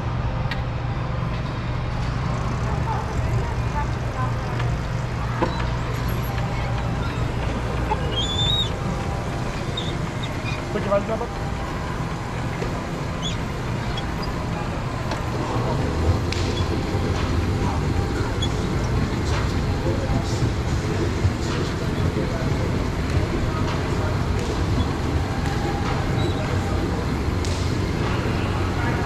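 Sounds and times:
go-kart low hum: 0:00.0 - 0:29.0
indistinct voices: 0:02.2 - 0:29.0
faint high squeaks: 0:09.5 - 0:10.9.

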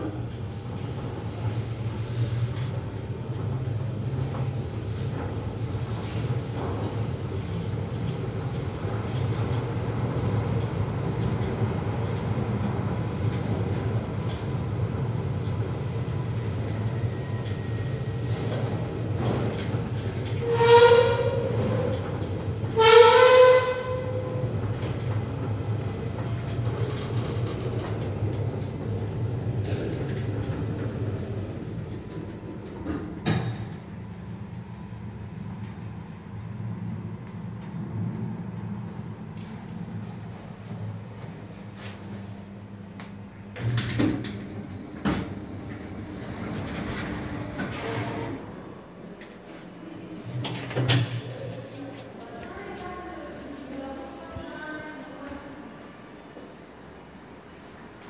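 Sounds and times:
lift motor humming: 0:00.0 - 0:55.4
horn blasts: 0:20.4 - 0:21.6, 0:22.8 - 0:24.4.

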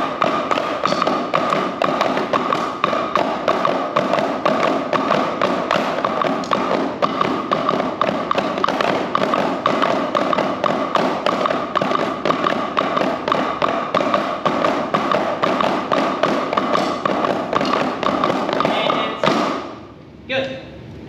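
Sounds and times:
drumsticks on practice pads: 0:00.0 - 0:19.8.

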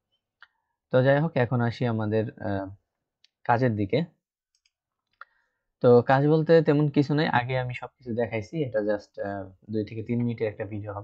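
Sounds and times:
person speaking: 0:00.9 - 0:11.0
computer mouse click: 0:04.4 - 0:05.3.

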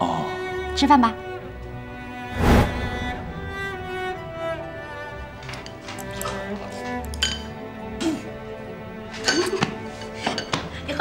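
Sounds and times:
soft background music: 0:00.0 - 0:11.0
chopsticks clinking on porcelain: 0:05.6 - 0:07.5.

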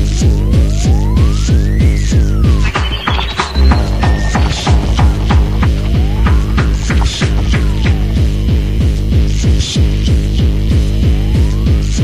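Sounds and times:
hi-hat strokes: 0:02.6 - 0:08.4
heavy kick drum: 0:02.7 - 0:08.8.

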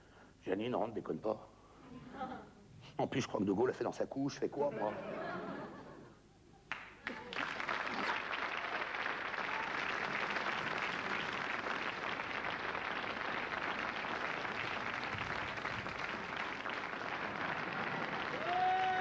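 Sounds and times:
audience applauding: 0:06.7 - 0:19.0.

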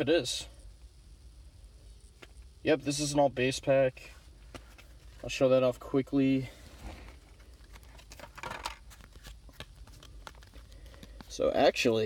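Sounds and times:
faint low hum: 0:00.0 - 0:12.0
light ticks of card edges: 0:08.9 - 0:11.5.

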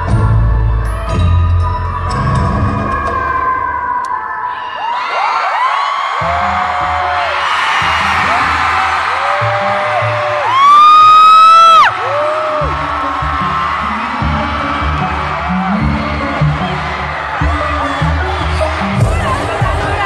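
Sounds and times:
pop concert music with bass beat: 0:00.0 - 0:04.3, 0:06.1 - 0:20.0
fans screaming: 0:02.6 - 0:20.0.

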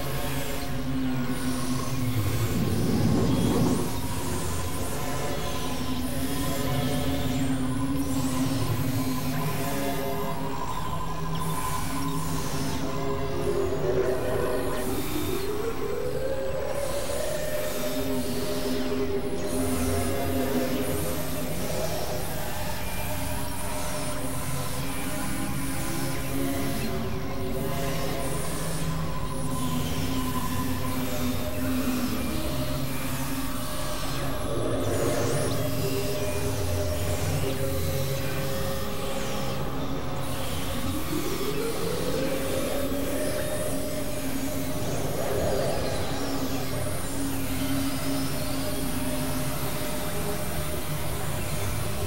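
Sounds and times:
synthesizer drone music: 0:00.0 - 0:06.2, 0:28.4 - 0:52.0.

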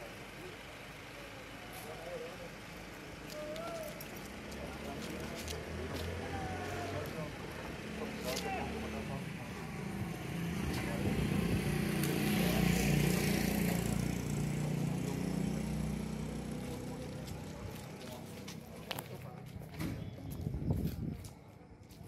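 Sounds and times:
vehicle engine running: 0:00.0 - 0:19.6.

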